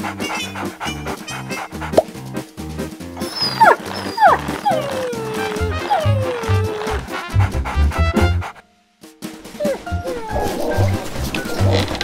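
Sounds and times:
bouncy background music: 0:00.0 - 0:12.0
cartoon dog yelping and whining: 0:03.2 - 0:07.2, 0:09.5 - 0:10.8.

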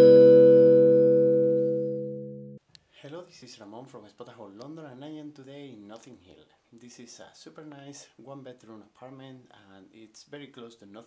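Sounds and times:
held musical chord: 0:00.0 - 0:02.6.

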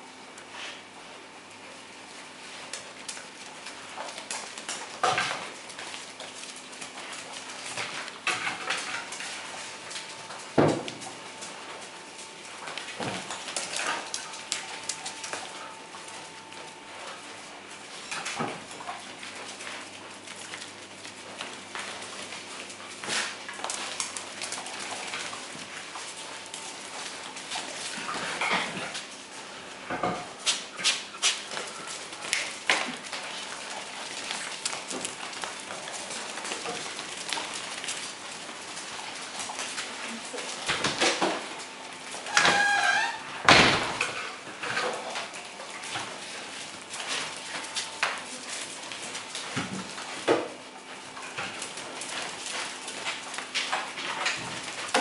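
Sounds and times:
clicks and knocks on tiled floor: 0:03.9 - 0:06.0, 0:07.6 - 0:11.2, 0:12.6 - 0:15.5, 0:40.6 - 0:41.6, 0:42.2 - 0:46.1.

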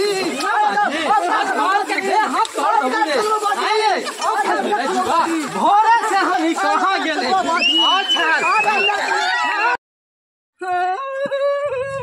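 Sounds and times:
people talking loudly: 0:00.0 - 0:09.8.

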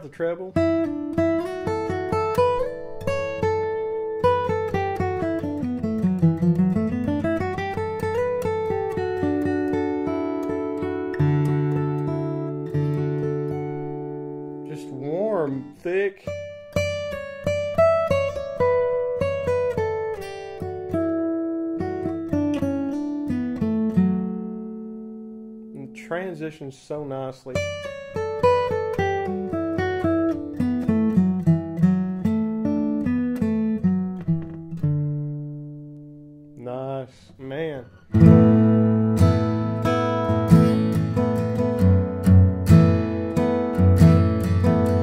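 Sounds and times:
acoustic guitar playing: 0:00.0 - 0:45.0.

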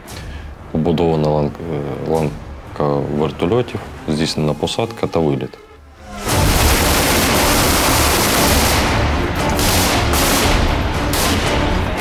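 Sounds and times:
continuous gunfire: 0:06.2 - 0:12.0.

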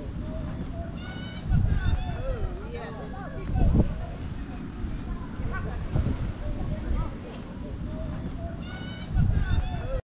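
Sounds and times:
faint voices outdoors: 0:00.0 - 0:10.0.

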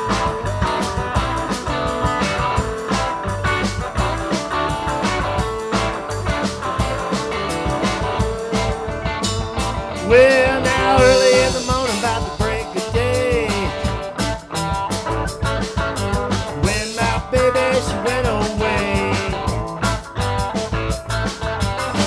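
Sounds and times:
bending guitar melody: 0:00.0 - 0:22.0
electric guitars: 0:00.0 - 0:22.0
steady drum beat: 0:00.0 - 0:22.0.

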